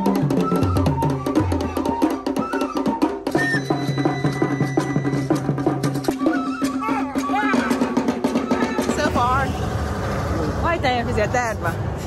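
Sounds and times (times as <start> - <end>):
outdoor crowd noise: 0.0 - 12.0
traditional drum music: 0.0 - 12.0
people talking: 10.3 - 11.8.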